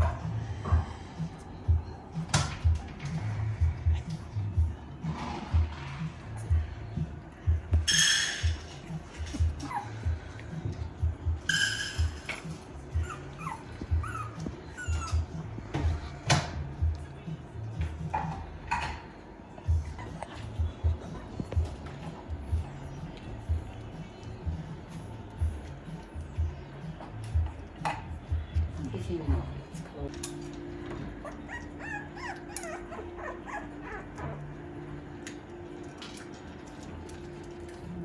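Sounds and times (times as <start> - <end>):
background music with steady beat: 0.0 - 38.0
puppies whining: 7.5 - 17.0, 19.6 - 26.6, 30.4 - 38.0
puppies yelping: 9.4 - 10.4, 12.8 - 15.6, 19.8 - 20.7, 31.1 - 34.6.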